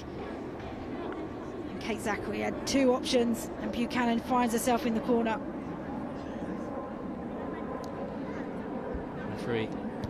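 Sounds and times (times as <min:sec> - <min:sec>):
open-air background noise: 0:00.0 - 0:10.0.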